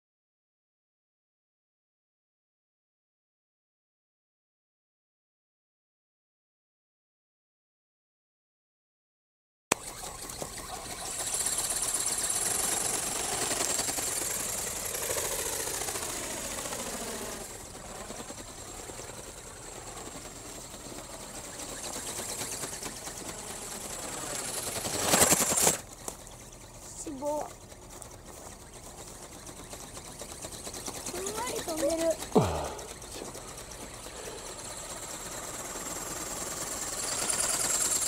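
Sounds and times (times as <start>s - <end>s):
toy motor whining with flapping whirr: 9.7s - 38.0s.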